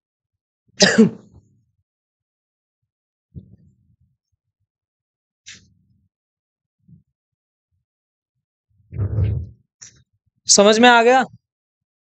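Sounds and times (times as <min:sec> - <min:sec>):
man clearing his throat: 0:00.8 - 0:01.3.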